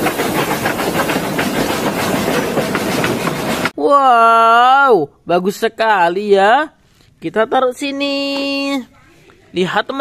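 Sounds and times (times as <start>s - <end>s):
steam hissing: 0.0s - 3.8s
train rattling clatter: 0.0s - 3.8s.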